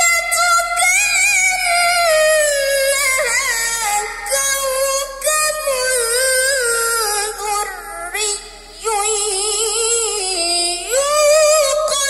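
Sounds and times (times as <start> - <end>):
boy's melodic recitation: 0.0 - 12.0.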